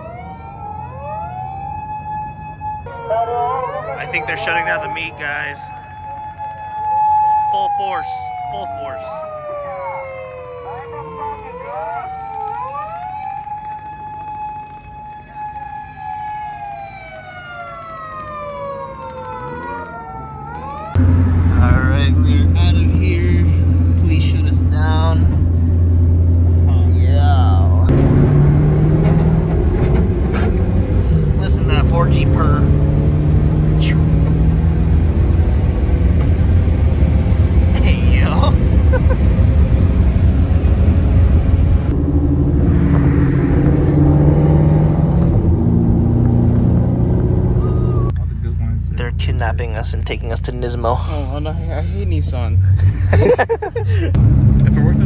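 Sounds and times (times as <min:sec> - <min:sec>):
siren wailing: 0:00.0 - 0:24.3, 0:27.9 - 0:36.0, 0:37.7 - 0:48.1
road noise: 0:00.0 - 0:55.0
car engine drone: 0:02.4 - 0:09.6, 0:19.0 - 0:55.0
voices: 0:02.9 - 0:05.8, 0:21.5 - 0:25.2, 0:37.7 - 0:39.2, 0:47.6 - 0:55.0.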